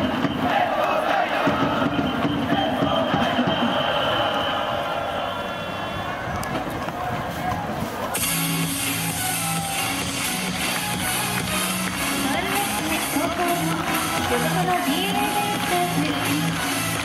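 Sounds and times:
crowd chanting and cheering: 0:00.0 - 0:17.0
music with long held notes: 0:08.2 - 0:17.0.

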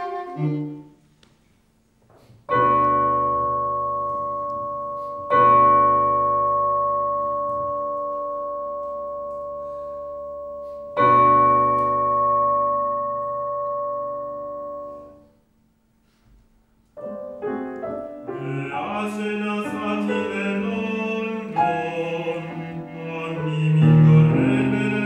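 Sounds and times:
piano chords ringing: 0:02.5 - 0:15.9, 0:16.7 - 0:25.0.

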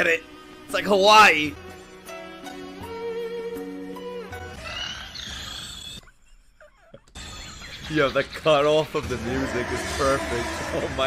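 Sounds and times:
soundtrack music with held notes: 0:00.0 - 0:05.6, 0:07.2 - 0:11.0
roar-like creature sound: 0:09.1 - 0:11.0.

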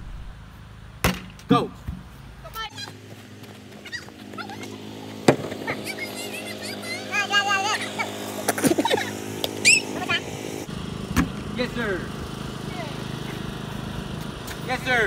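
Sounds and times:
steady low hum: 0:00.0 - 0:01.0
loud wavering shouts: 0:05.7 - 0:08.2, 0:08.9 - 0:10.4.

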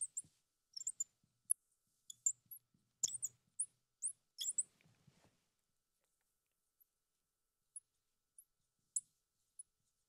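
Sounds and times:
marker squeaking on glass: 0:03.0 - 0:03.4, 0:04.4 - 0:04.6.

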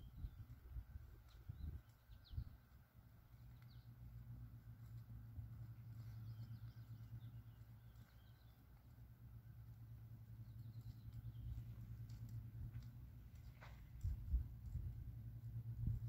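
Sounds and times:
faint birdsong chirping: 0:00.0 - 0:16.0.

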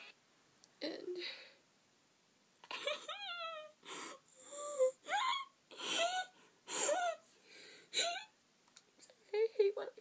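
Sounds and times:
girl crying: 0:02.7 - 0:07.3, 0:08.0 - 0:08.4.

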